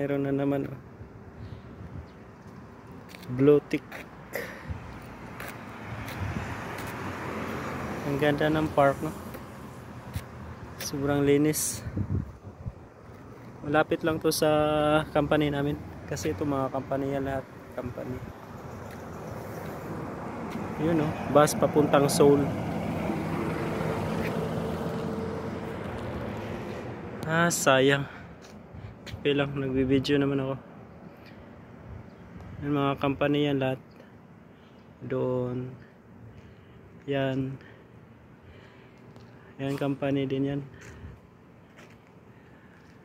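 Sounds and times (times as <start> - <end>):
bus engine and road noise: 0.0 - 43.0
passing vehicle hum: 2.6 - 29.1.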